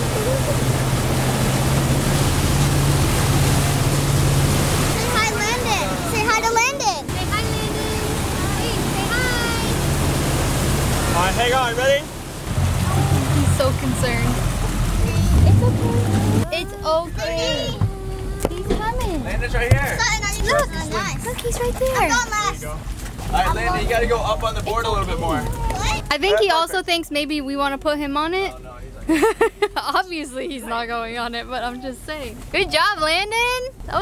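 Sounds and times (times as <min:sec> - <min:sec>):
wake water rushing: 0:00.0 - 0:27.0
boat engine hum: 0:00.0 - 0:34.0
wind: 0:00.0 - 0:34.0.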